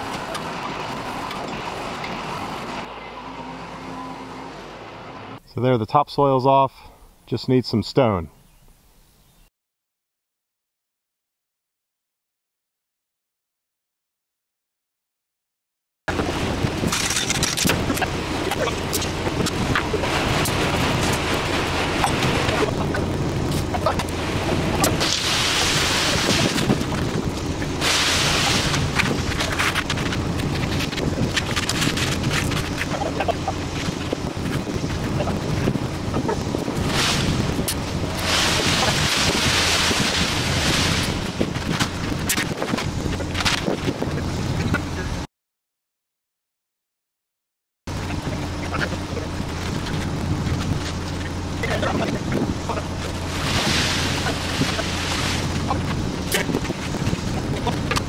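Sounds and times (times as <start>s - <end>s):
wet concrete pouring and raking: 16.1s - 43.8s, 48.2s - 58.0s
concrete mixer truck running: 16.1s - 45.2s, 47.9s - 58.0s.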